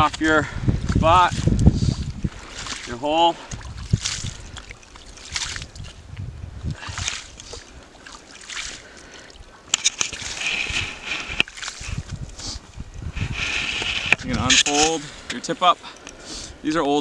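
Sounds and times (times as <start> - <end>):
ice crunching with sharp clicks: 9.7 - 12.4.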